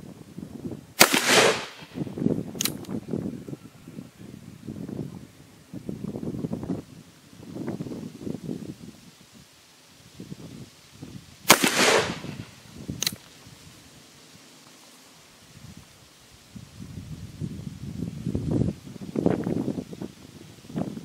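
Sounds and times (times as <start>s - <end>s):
weaker gunshot crack: 1.0s - 2.0s, 11.5s - 12.5s
revolver shot: 11.5s - 12.5s.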